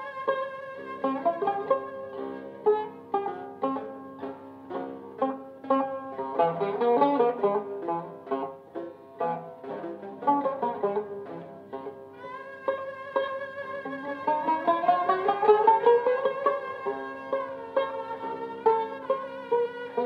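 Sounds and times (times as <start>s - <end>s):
plucked lute notes: 0.0s - 20.0s.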